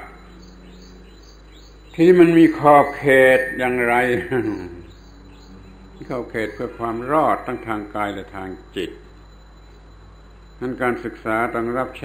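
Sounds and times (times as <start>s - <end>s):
faint high chirps: 0.0s - 12.0s
low hum: 0.0s - 12.0s.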